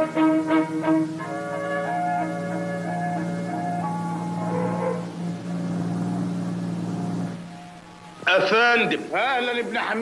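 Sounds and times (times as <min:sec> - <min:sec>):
jeep engine running: 0:00.0 - 0:10.0.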